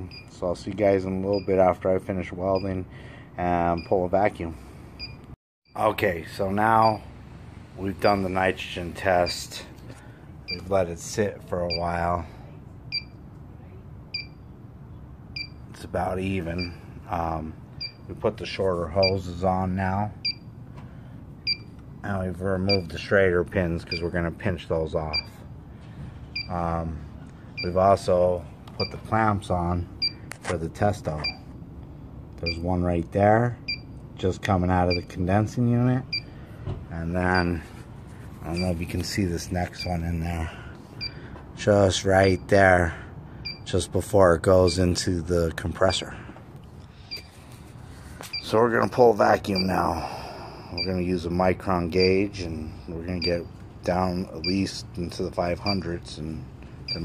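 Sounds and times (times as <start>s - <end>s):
low background hum: 0.0s - 57.0s.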